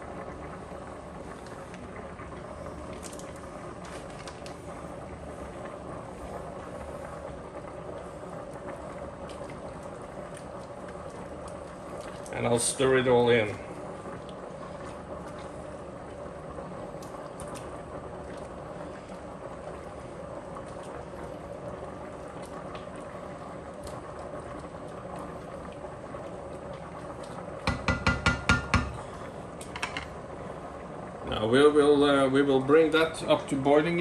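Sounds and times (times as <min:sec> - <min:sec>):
stew simmering in a pot: 0:00.0 - 0:34.0
spatula tapping against pot: 0:27.6 - 0:29.0.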